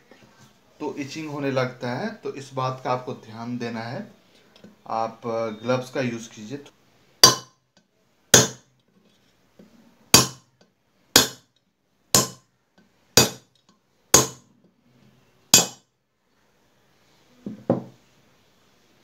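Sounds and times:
hammer striking steel rod: 7.2s - 7.5s, 8.4s - 8.6s, 10.2s - 10.4s, 11.2s - 11.4s, 12.2s - 12.4s, 13.2s - 13.4s, 14.2s - 14.4s, 15.5s - 15.8s.

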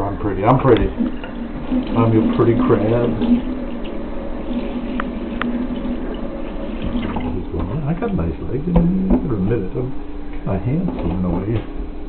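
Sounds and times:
tap water splashing into sink: 0.7s - 7.8s.

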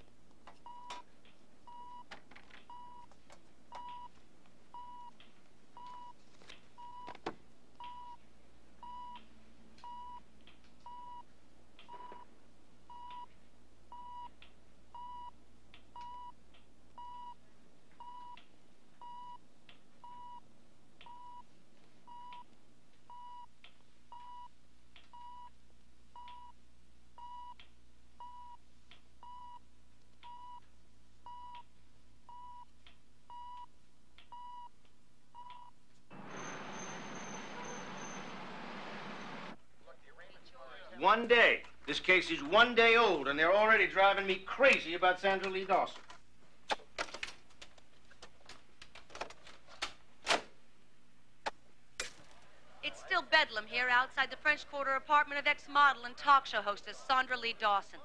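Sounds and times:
patient monitor beeping: 0.6s - 1.1s, 1.7s - 5.2s, 5.8s - 6.2s, 6.8s - 7.2s, 7.8s - 8.2s, 8.8s - 9.2s, 9.8s - 10.2s, 10.8s - 12.3s, 12.9s - 13.3s, 13.9s - 15.4s, 16.0s - 16.4s, 17.0s - 17.4s, 18.0s - 18.4s, 20.0s - 21.5s, 22.1s - 22.5s, 24.1s - 24.5s, 25.1s - 25.6s, 26.2s - 26.6s, 28.2s - 28.6s, 29.2s - 31.7s, 32.3s - 32.7s.

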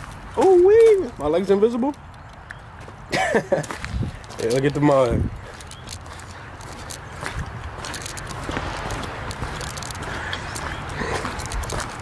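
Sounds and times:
footsteps crunching on wet gravel: 0.0s - 12.0s.

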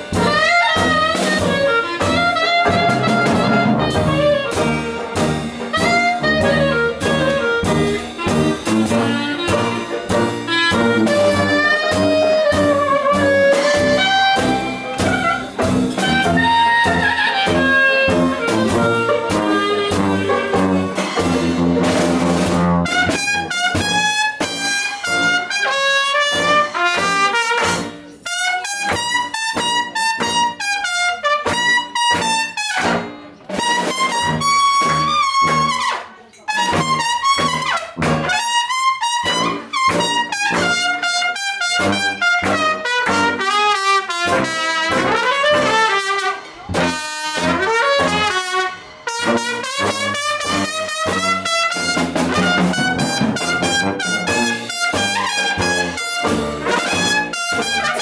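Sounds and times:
held low brass notes: 0.0s - 24.3s, 36.6s - 58.0s
jazz band playing live: 0.0s - 58.0s
trumpet solo melody: 0.0s - 58.0s.

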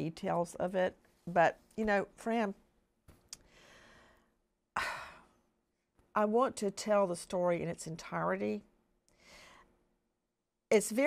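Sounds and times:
woman breathing: 3.4s - 5.6s, 9.1s - 9.9s.

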